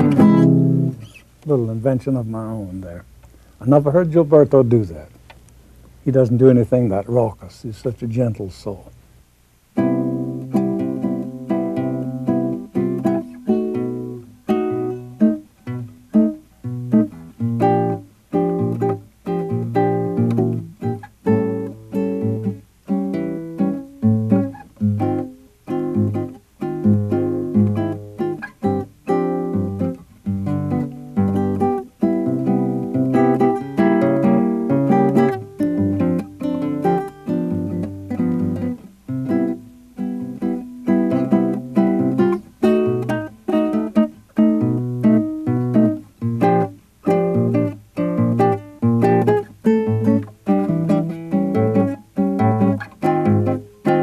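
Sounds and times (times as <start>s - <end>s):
classical guitar fingerstyle: 0.0s - 5.4s, 9.7s - 54.0s.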